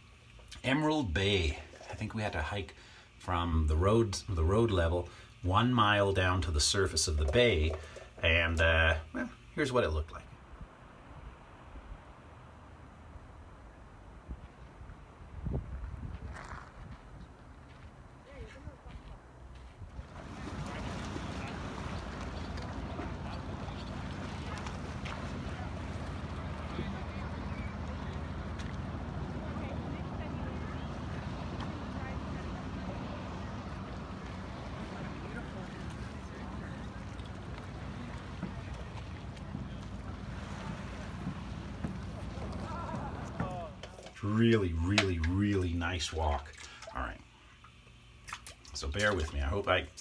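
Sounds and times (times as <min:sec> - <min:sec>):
wind rumbling on microphone: 0:10.4 - 0:18.1, 0:18.8 - 0:43.8
wind on microphone: 0:14.2 - 0:17.4
faint distant voices: 0:20.0 - 0:44.6.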